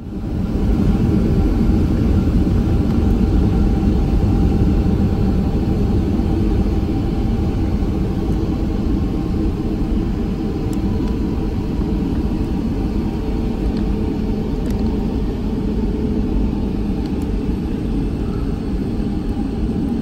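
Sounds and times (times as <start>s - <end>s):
faint steady engine tones: 0.0s - 20.0s
jet engines low rumble in cabin: 0.0s - 20.0s.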